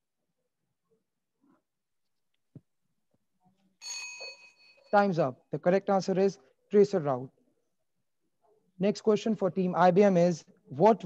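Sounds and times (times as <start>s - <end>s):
bell ringing: 3.8s - 5.2s.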